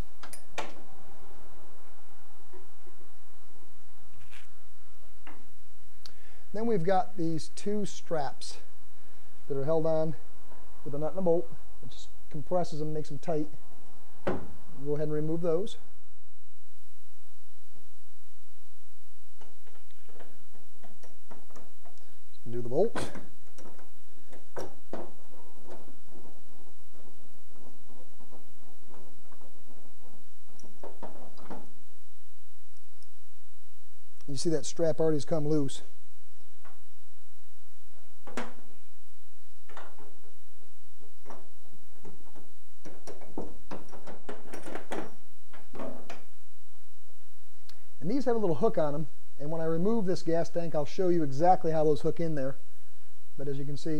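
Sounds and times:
steady low hum: 0:00.0 - 0:53.9
metal strap clicking and knocking: 0:41.2 - 0:46.3.

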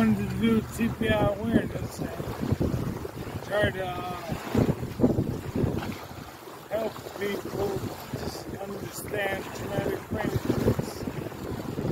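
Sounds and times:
man saying uh: 0:00.0 - 0:02.2, 0:03.4 - 0:04.4, 0:06.7 - 0:10.8
wind buffeting microphone: 0:00.0 - 0:11.9.

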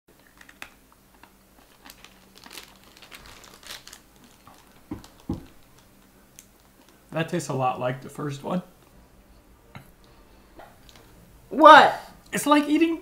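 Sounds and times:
plastic wrapper crinkling: 0:00.2 - 0:07.6, 0:10.6 - 0:11.1
dull thumps: 0:04.9 - 0:05.6.

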